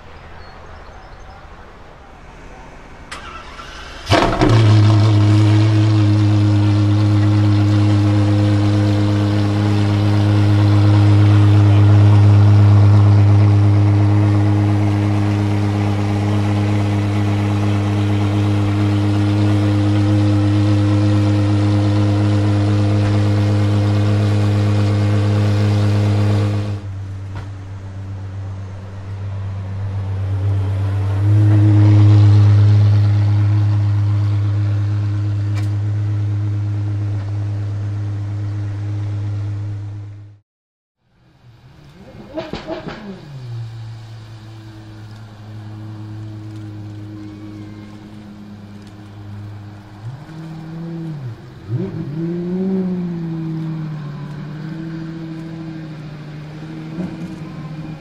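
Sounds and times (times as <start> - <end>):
car engine starting and idling: 2.8 - 40.4, 41.1 - 58.0.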